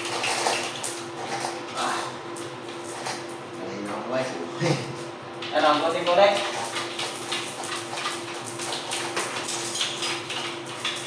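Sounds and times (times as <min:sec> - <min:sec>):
steady hum: 0:00.0 - 0:11.0.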